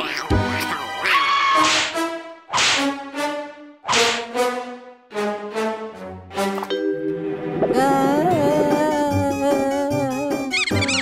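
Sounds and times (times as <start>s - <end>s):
brassy comic music: 0.0s - 6.6s
cartoon whip cracks: 1.6s - 3.0s, 3.9s - 4.3s.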